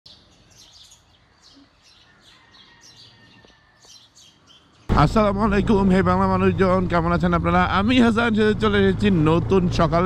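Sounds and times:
small birds chirping: 0.1 - 5.3.

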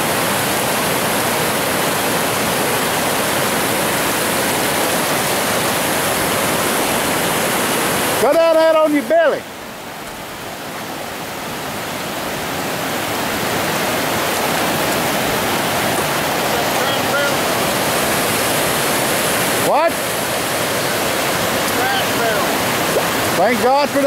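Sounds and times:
river rushing over rocks: 0.0 - 24.0.

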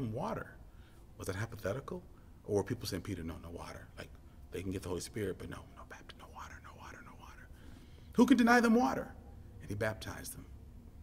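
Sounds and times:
man whispering: 5.1 - 7.6.

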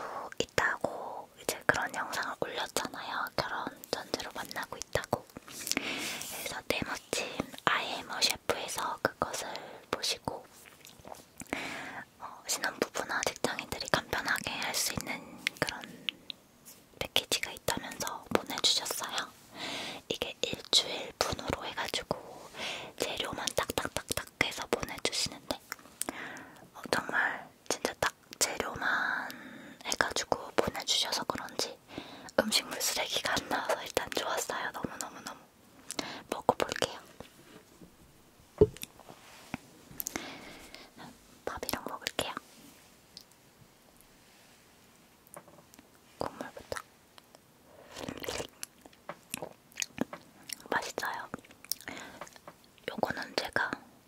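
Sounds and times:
woman whispering: 0.0 - 5.3, 6.2 - 10.5, 12.0 - 15.9, 17.0 - 19.4, 20.0 - 25.8, 26.7 - 35.5, 36.3 - 37.2, 40.8 - 42.5, 46.2 - 46.9, 50.6 - 51.4, 52.8 - 53.9.

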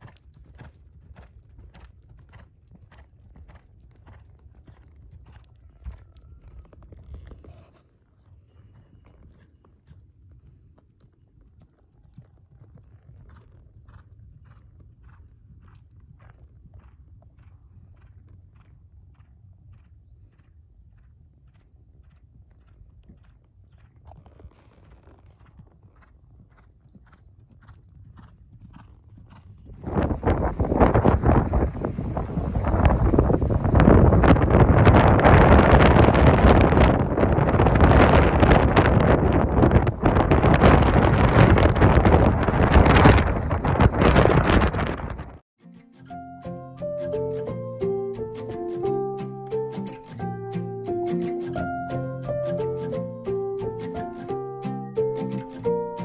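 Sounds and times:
horse hooves clip-clopping on dirt: 0.0 - 31.4
wind buffeting microphone: 27.9 - 45.4.

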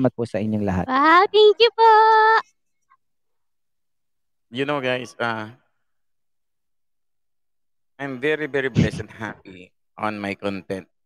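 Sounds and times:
high voice drawn-out exclamation: 0.9 - 2.4.

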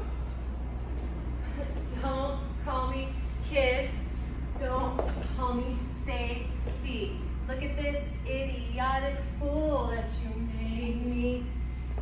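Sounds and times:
steady low hum: 0.0 - 12.0
woman singing: 4.6 - 11.6.

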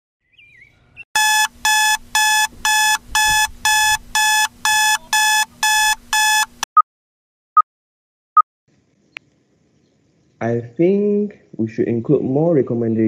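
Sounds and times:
shrill alarm beeps: 1.2 - 6.7.

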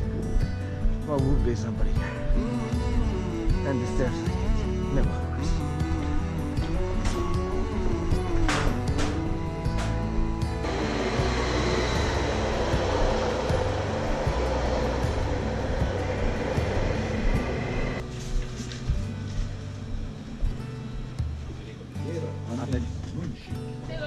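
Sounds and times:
background music with steady beat: 0.0 - 24.0
electric train pulling in: 5.4 - 18.0.

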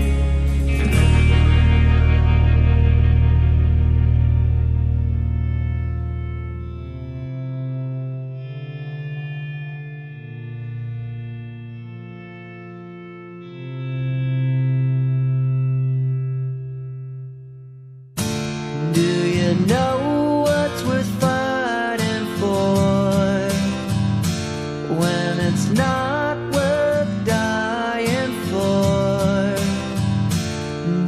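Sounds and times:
effects-laden guitar chords: 0.0 - 31.0
strummed guitar: 0.0 - 31.0.

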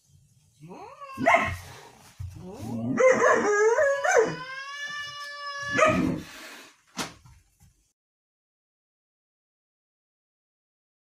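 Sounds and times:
dog howling and whining: 0.7 - 1.7, 2.4 - 6.2
dog barking: 1.2 - 1.7, 2.9 - 4.4, 5.7 - 6.2.

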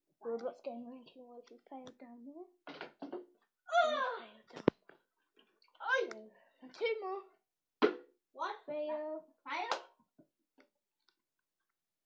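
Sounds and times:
children talking and exclaiming: 3.7 - 4.7, 5.7 - 7.4.

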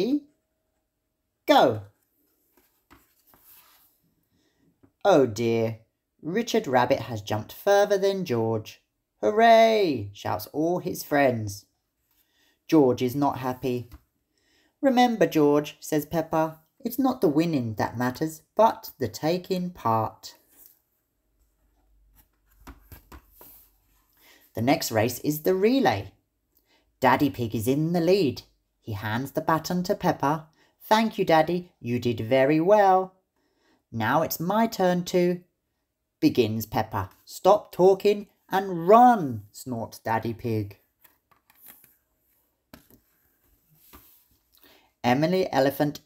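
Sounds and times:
paper page turning: 2.2 - 4.0, 22.1 - 23.8, 41.0 - 44.4.

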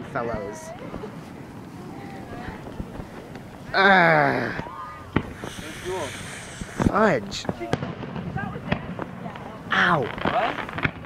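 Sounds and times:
voices: 0.0 - 11.0
wind noise: 0.0 - 11.0.

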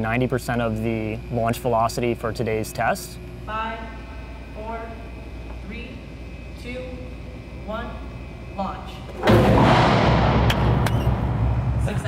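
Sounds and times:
loud low rumble: 9.2 - 12.0.

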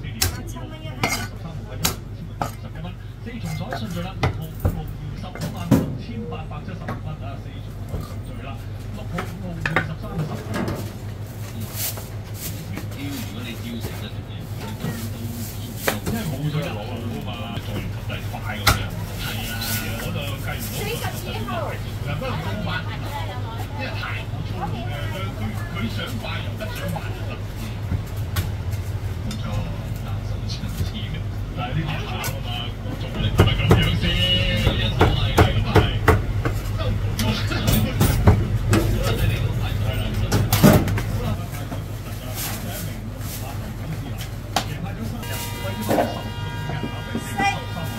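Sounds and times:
steady low hum: 0.0 - 47.9.

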